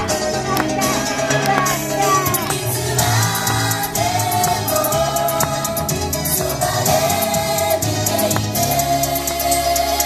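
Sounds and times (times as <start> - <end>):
backing track with steady beat: 0.0 - 10.0
girls singing pop song: 0.0 - 10.0.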